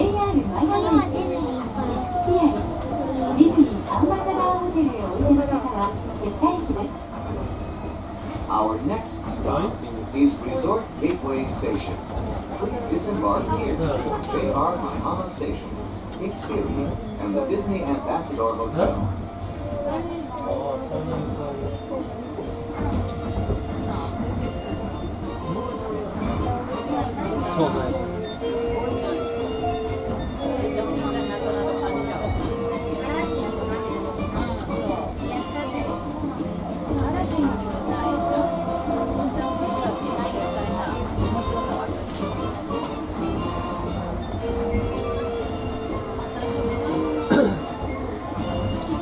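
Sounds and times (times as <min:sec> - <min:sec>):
children's voices: 0:00.0 - 0:06.8, 0:30.5 - 0:42.1
monorail train rumbling: 0:00.0 - 0:49.0
recorded onboard announcement: 0:00.0 - 0:49.0.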